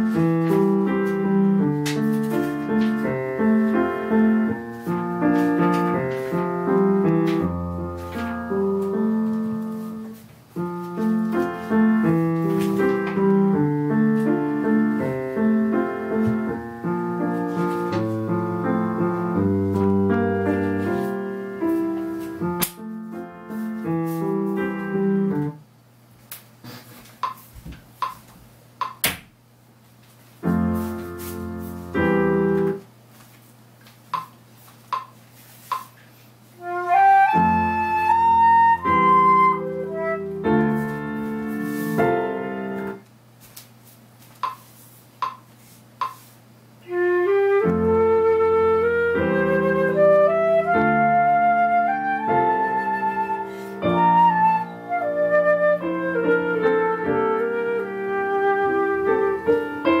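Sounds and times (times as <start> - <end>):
piano accompaniment: 0.0 - 25.6, 30.4 - 32.9, 36.6 - 43.0, 46.8 - 60.0
concert flute melody: 36.6 - 42.9, 46.8 - 60.0.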